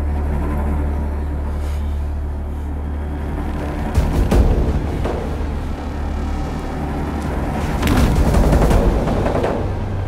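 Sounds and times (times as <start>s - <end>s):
low rumbling drone: 0.0s - 10.0s
sharp cracking hits: 3.9s - 10.0s.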